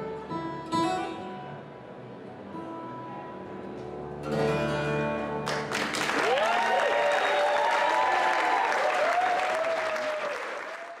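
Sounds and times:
audience applause: 5.5 - 11.0
whooping cheers: 6.1 - 11.0.

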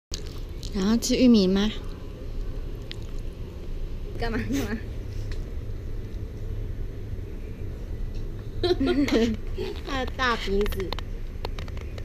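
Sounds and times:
low steady rumble: 0.1 - 12.0.

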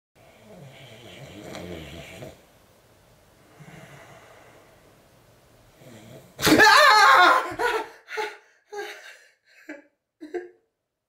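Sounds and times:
person snoring: 0.2 - 2.4, 3.5 - 4.8.

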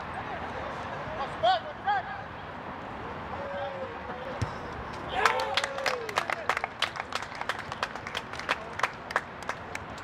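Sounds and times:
spectators clapping: 5.2 - 10.0.

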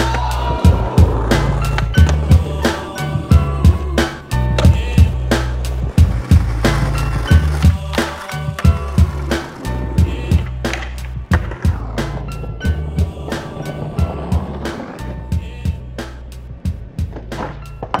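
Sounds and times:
hip-hop beat with bass line: 0.0 - 17.7
skateboard wheels rolling on concrete: 0.0 - 18.0
skateboard popping and landing: 0.1 - 15.1, 16.9 - 18.0.

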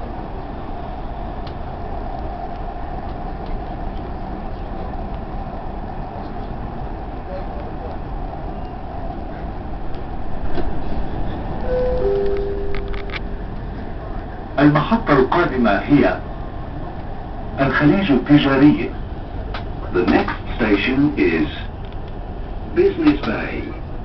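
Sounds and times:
train rumble inside carriage: 0.0 - 24.0
short steady tones: 11.6 - 13.2
clicks: 11.9 - 13.7.

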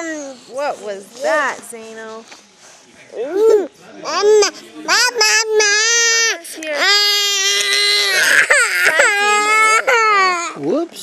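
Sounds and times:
toddler crying: 3.2 - 10.6.

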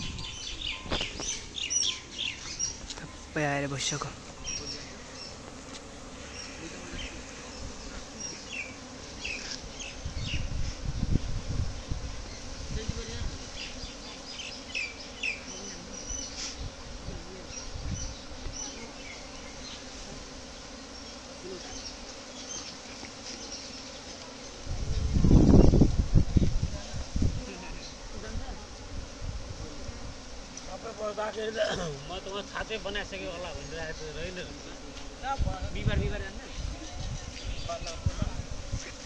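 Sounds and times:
honeybee swarm buzzing: 0.0 - 39.0.

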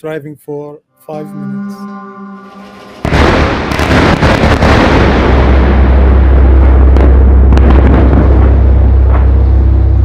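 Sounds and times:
deep continuous rumble: 1.5 - 10.0
explosion blast: 2.4 - 10.0
sharp cracks: 2.7 - 9.5.

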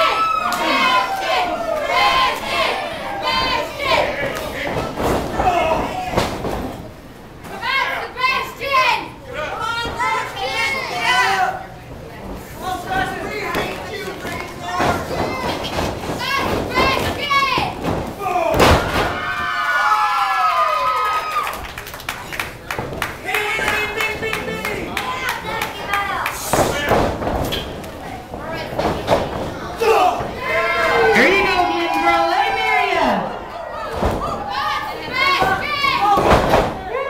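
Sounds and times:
spectators yelling: 0.0 - 4.6, 18.2 - 21.6, 29.8 - 37.0
body slamming onto ring canvas: 14.8 - 19.2.

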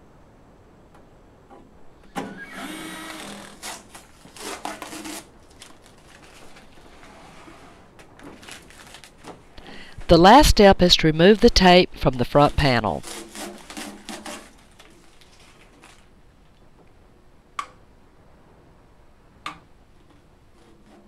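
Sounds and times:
cordless drill driving screws: 2.2 - 5.1.

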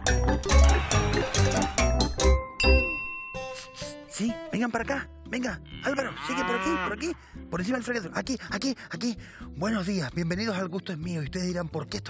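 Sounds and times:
light jingly music: 0.0 - 6.0
cow mooing: 0.5 - 1.6, 5.6 - 7.2.

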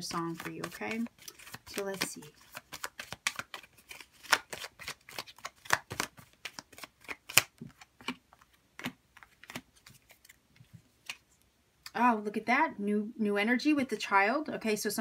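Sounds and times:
cards being shuffled: 0.0 - 11.5.

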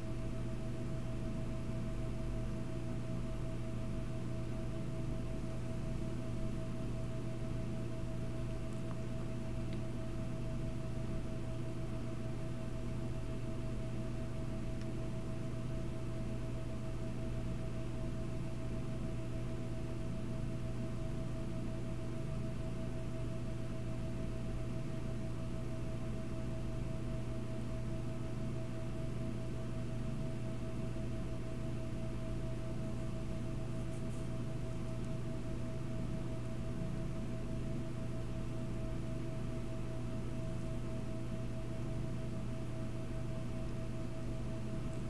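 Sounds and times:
steady background hum: 0.0 - 45.0.

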